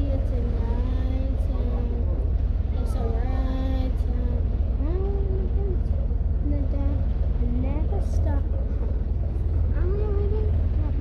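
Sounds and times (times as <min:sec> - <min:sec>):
vehicle interior rumble: 0:00.0 - 0:11.0.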